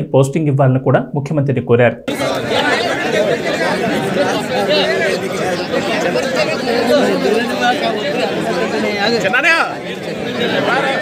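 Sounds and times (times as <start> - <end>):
men's voices talking: 0.0 - 11.0.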